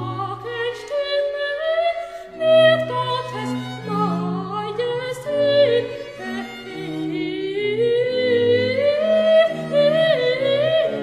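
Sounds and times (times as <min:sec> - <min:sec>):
strings playing: 0:02.3 - 0:11.0.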